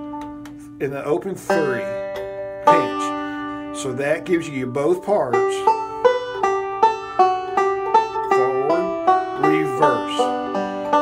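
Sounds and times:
banjo picking: 0.0 - 11.0.

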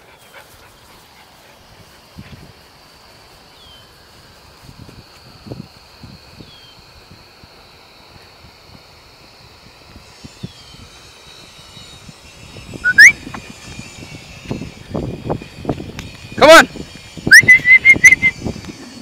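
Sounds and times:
person whistling for a dog: 12.8 - 13.2, 17.3 - 18.4.

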